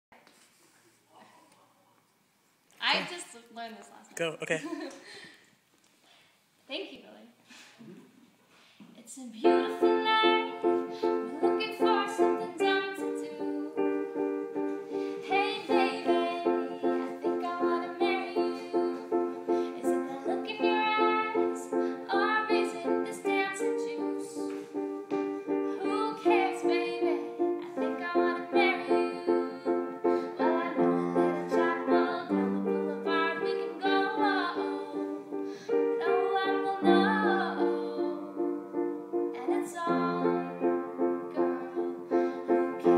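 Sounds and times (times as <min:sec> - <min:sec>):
woman singing: 0:09.0 - 0:24.8, 0:25.5 - 0:42.9
piano chords: 0:09.4 - 0:42.9.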